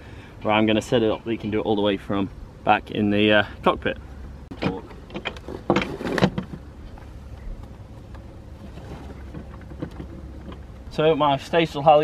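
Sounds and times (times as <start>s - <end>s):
steady low hum: 0.0s - 12.0s
rope rustling and knocking: 8.6s - 10.7s.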